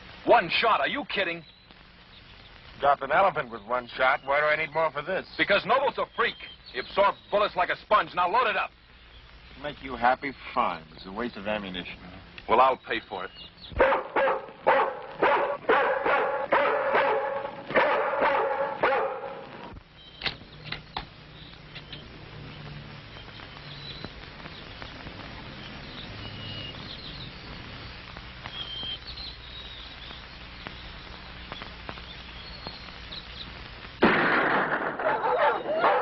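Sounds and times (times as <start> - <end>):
low steady hum: 0.0 - 36.0
faint high chirps: 1.2 - 2.6, 18.2 - 33.6
dog barking: 13.8 - 19.5, 35.0 - 36.0.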